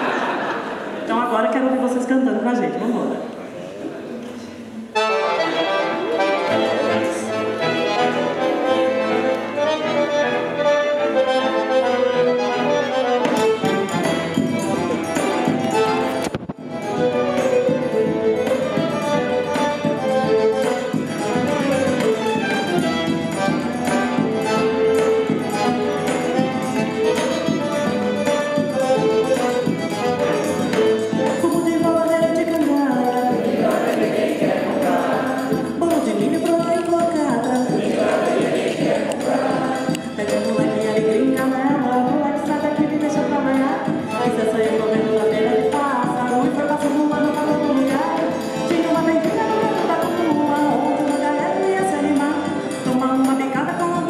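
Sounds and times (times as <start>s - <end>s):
string quartet: 3.3s - 54.0s
accordion: 4.9s - 54.0s.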